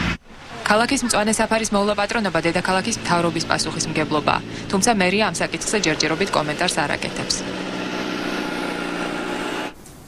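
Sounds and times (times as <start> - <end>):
mechanical drone: 1.8 - 9.8.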